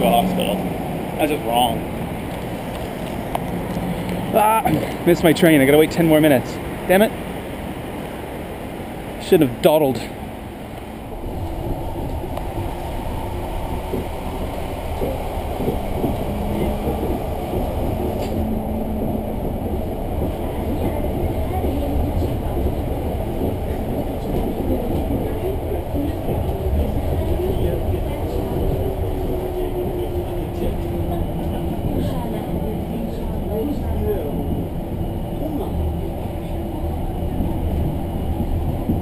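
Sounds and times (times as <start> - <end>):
train running gear rumble: 0.0 - 39.0.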